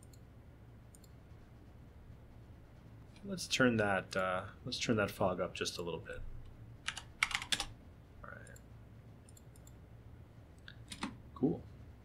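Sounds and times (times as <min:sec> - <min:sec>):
computer keyboard typing: 0:06.8 - 0:07.7, 0:09.3 - 0:09.8, 0:10.8 - 0:11.2.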